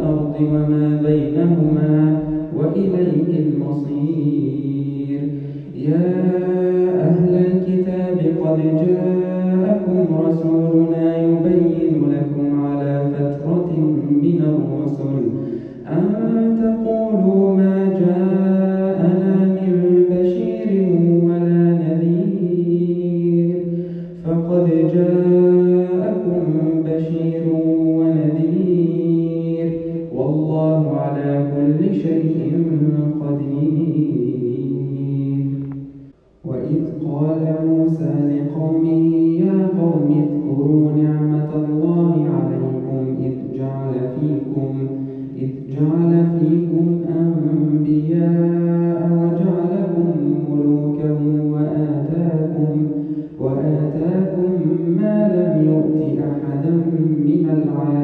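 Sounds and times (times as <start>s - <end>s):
man reciting melodically: 0.0s - 58.0s.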